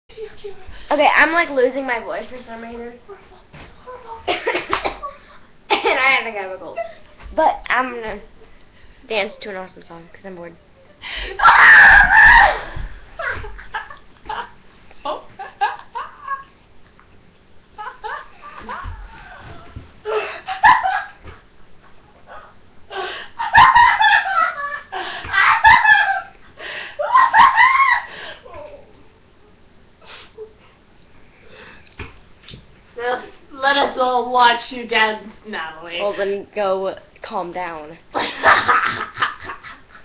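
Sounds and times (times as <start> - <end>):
girl shrieking: 11.4 - 12.8, 27.0 - 28.8
girl giggling: 27.0 - 29.0
girl sniffing: 30.0 - 30.4.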